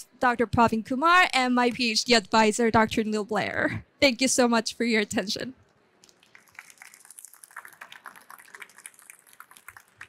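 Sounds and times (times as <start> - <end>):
faint scattered applause: 6.1 - 10.0.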